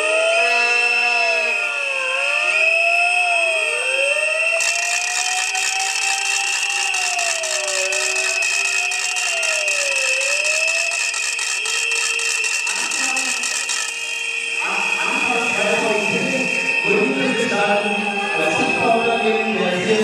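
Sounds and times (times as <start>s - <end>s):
wailing siren: 0.0s - 19.9s
rattling hiss: 4.6s - 14.2s.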